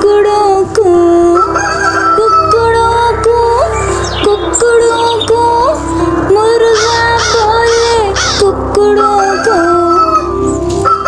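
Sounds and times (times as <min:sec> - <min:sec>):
rooster crowing: 0:01.4 - 0:02.6, 0:06.8 - 0:11.0.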